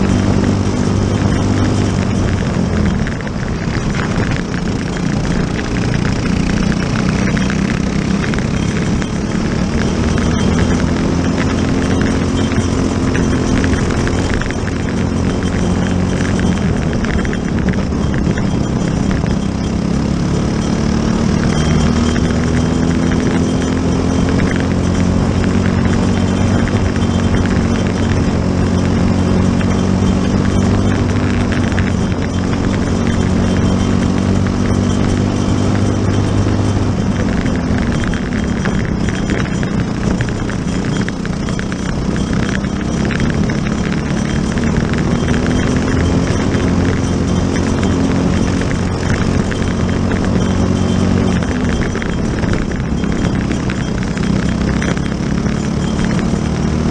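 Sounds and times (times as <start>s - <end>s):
kart engine revving: 0.0s - 56.9s.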